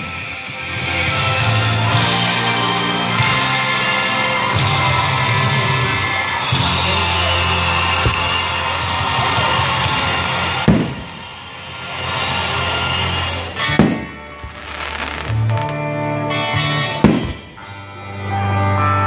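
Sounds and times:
music: 0:00.0 - 0:19.0
fireworks bursting with bangs: 0:07.1 - 0:17.8.

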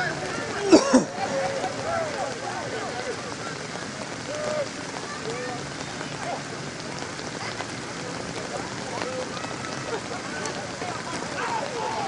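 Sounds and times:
faint distant voices: 0:00.0 - 0:12.0
steady rain falling: 0:00.0 - 0:12.0.

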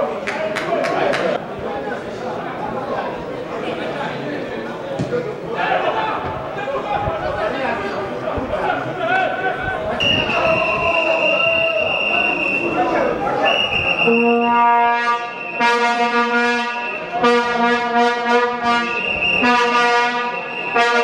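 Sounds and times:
crowd chatter: 0:00.0 - 0:21.0
high whistle-like tone: 0:10.0 - 0:15.8, 0:16.7 - 0:17.2, 0:18.9 - 0:21.0
horn blasts: 0:13.7 - 0:21.0.

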